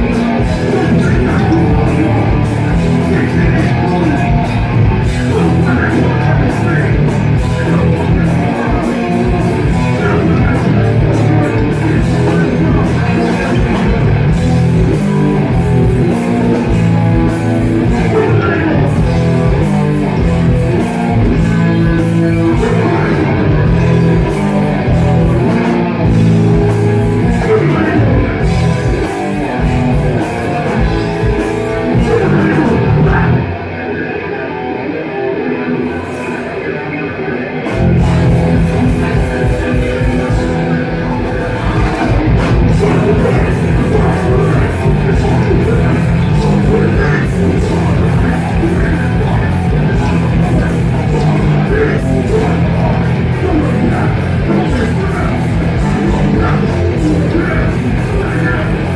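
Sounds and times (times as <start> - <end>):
distorted electric guitars: 0.0 - 58.9
drums: 0.0 - 58.9
person singing: 0.0 - 58.9
punk band playing loud: 0.0 - 58.9.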